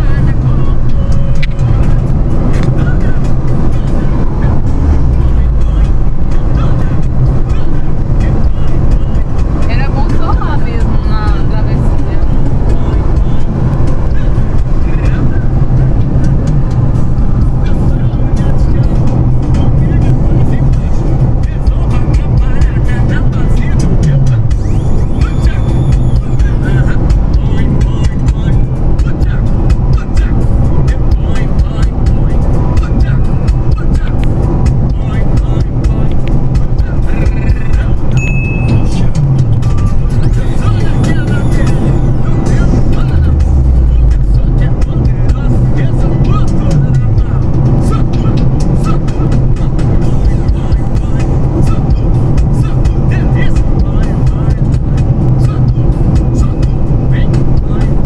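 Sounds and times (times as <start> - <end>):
car engine and road noise: 0.0 - 58.0
music playing: 0.0 - 58.0.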